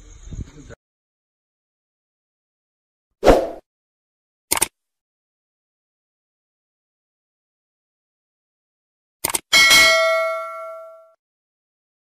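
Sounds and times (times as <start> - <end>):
quick clicks: 4.5 - 4.8, 9.2 - 9.5
bright bell ding: 9.6 - 11.2.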